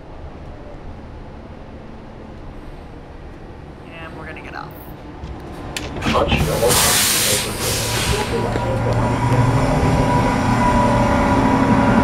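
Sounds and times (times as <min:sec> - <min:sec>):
bus engine rumble: 0:00.0 - 0:12.0.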